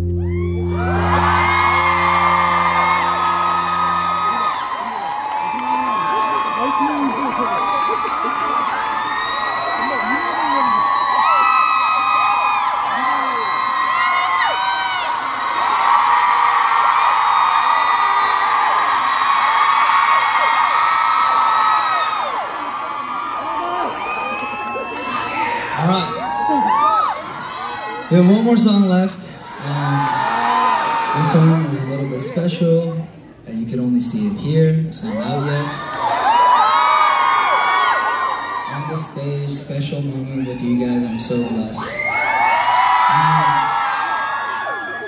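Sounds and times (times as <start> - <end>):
held low backing note: 0.0 - 4.8
crowd cheering and screaming: 0.0 - 33.0, 34.2 - 45.0.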